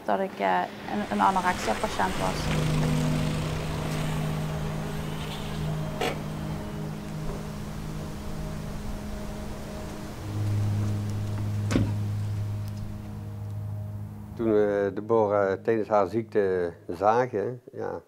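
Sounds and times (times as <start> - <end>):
car engine hum: 0.4 - 14.6
car door shutting: 5.0 - 6.5, 11.7 - 12.1.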